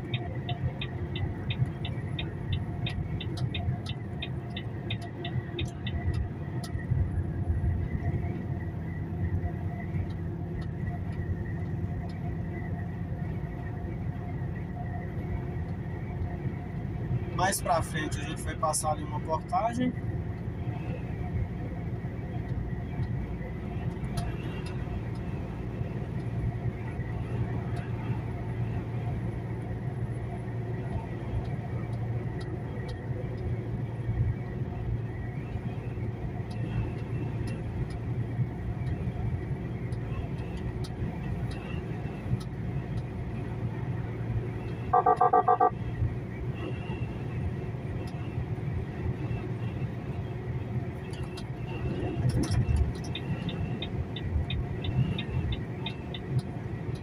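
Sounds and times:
truck engine and road rumble: 0.0 - 57.0.

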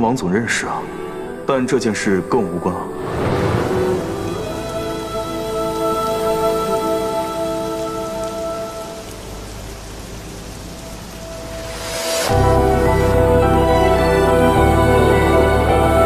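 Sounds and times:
soft music of held notes: 0.0 - 16.0
steady rain: 0.0 - 16.0.

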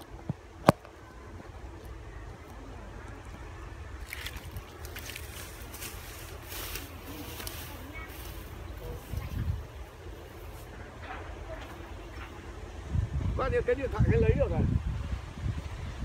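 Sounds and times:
rustling through tall grass: 1.6 - 12.6
wind buffeting the microphone: 3.3 - 16.0.

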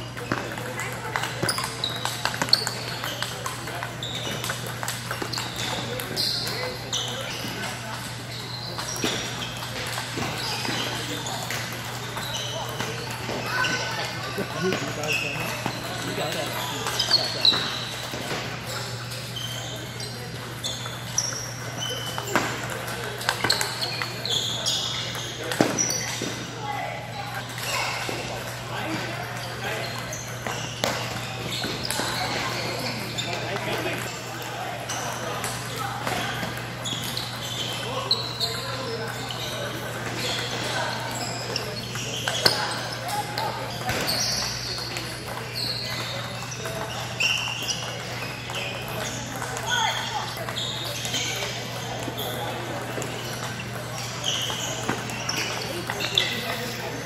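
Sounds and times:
voices chattering: 0.0 - 57.0
table tennis balls clicking: 0.3 - 7.2.

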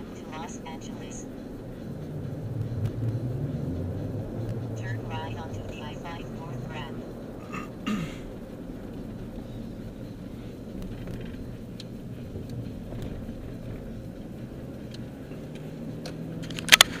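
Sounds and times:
car engine and road rumble: 0.0 - 17.0
faint ticks: 8.8 - 16.9.

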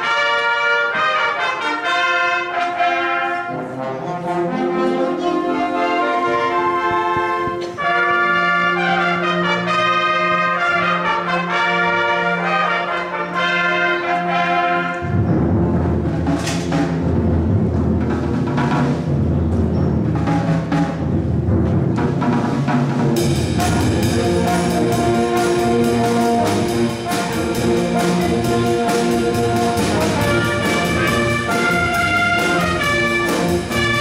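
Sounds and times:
brass holding chords: 0.0 - 16.2, 23.2 - 34.0
drum and cymbal hits: 15.0 - 34.0
drum-kit and cymbal beats: 22.0 - 34.0.

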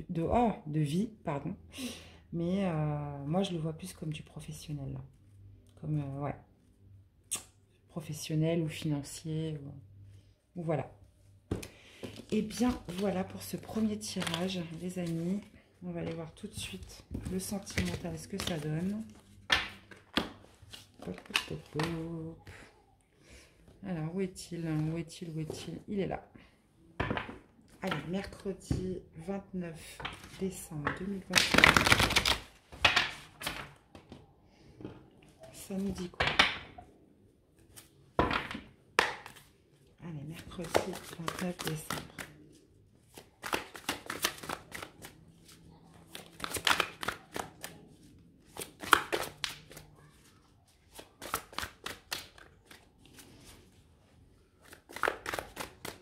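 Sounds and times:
cards slapping and swishing: 31.3 - 33.6, 40.6 - 50.2, 50.8 - 53.6, 54.6 - 56.0.

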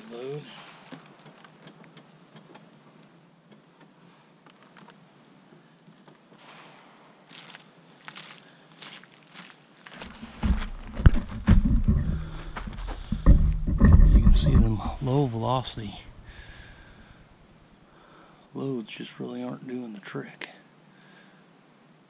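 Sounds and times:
soft scrapes of gelatin blocks: 6.4 - 10.4
footsteps on gravel: 7.3 - 17.1
loud knocks: 10.2 - 17.0
low rumble: 10.2 - 17.2.

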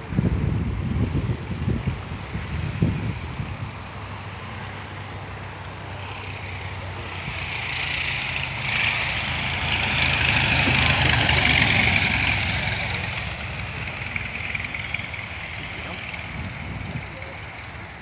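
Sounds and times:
biplane engine and propeller: 0.0 - 18.0.

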